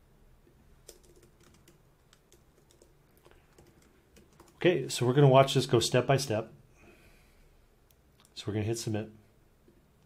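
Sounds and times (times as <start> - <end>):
typing on computer keyboard: 0.8 - 4.6.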